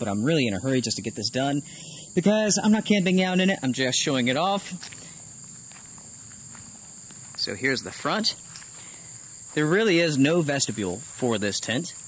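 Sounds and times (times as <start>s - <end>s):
insects chorus: 0.0s - 12.0s
footsteps on grass: 4.6s - 11.2s.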